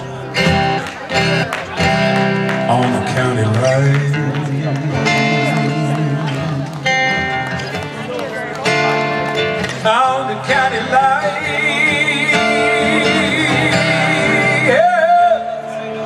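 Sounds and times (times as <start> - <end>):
acoustic guitar strumming: 0.0 - 16.0
electric guitar lead: 0.0 - 16.0.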